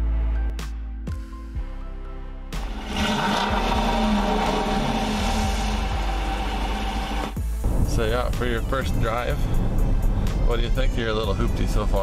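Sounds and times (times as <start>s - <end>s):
background music: 0.0s - 12.0s
car engine starting and idling: 2.5s - 9.7s.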